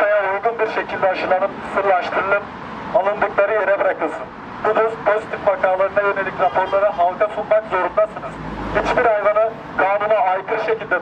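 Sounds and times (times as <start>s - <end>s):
man speaking through a megaphone: 0.0s - 11.0s.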